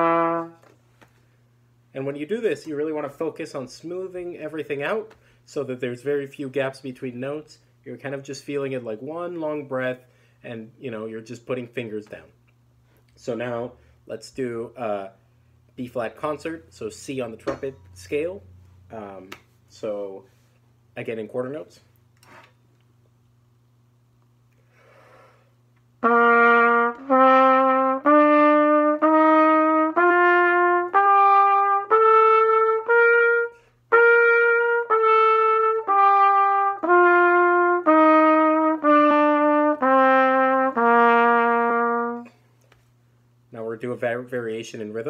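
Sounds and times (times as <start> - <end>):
trumpet playing a scale: 0.0 - 0.7, 26.0 - 42.4
low steady hum: 0.0 - 45.0
breath: 5.2 - 5.4, 10.1 - 10.4, 24.6 - 25.6.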